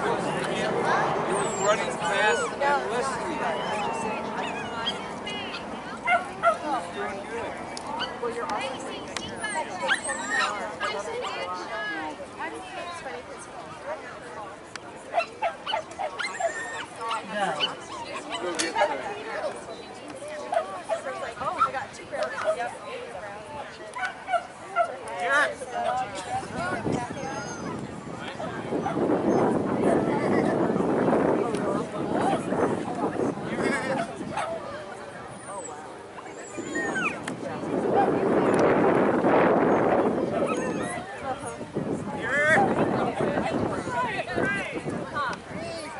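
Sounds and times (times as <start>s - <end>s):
people talking: 0.0s - 45.9s
people's voices: 0.0s - 45.9s
dog yipping and whining: 1.3s - 2.6s, 9.4s - 10.6s, 15.7s - 18.3s, 36.3s - 37.2s, 40.4s - 41.0s.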